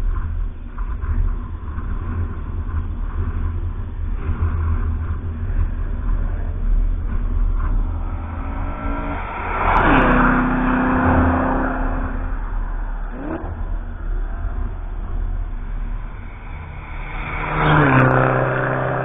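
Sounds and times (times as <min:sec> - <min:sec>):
steady low rumble: 0:00.0 - 0:19.0
race car passing by: 0:04.2 - 0:19.0.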